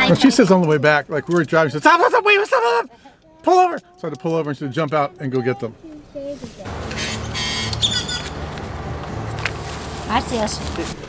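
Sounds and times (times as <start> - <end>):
traffic hum: 0.0 - 11.0
high chirp or squeak: 6.7 - 8.5.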